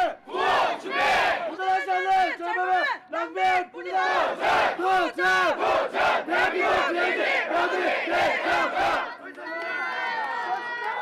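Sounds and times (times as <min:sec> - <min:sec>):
crowd chanting in unison: 0:00.0 - 0:01.6, 0:03.8 - 0:09.4.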